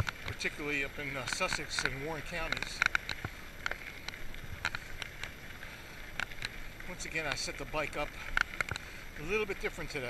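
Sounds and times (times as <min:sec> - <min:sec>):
bike clicks and rattles: 0:00.0 - 0:10.0
tyre and wind noise: 0:00.0 - 0:10.0.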